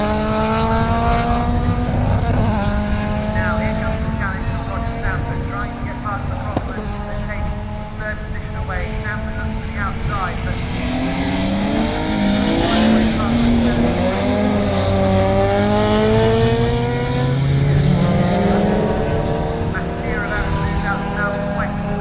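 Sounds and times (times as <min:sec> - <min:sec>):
racing car engines passing: 0:00.0 - 0:22.0
steady rushing noise: 0:03.0 - 0:22.0.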